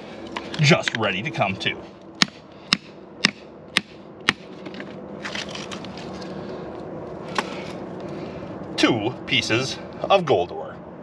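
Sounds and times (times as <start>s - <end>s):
hammer striking steel chisel: 2.2s - 4.5s
rock scraping and shifting: 4.6s - 6.5s.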